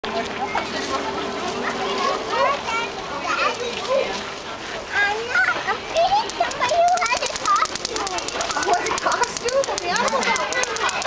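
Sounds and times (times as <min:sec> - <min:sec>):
children chattering: 0:00.0 - 0:11.0.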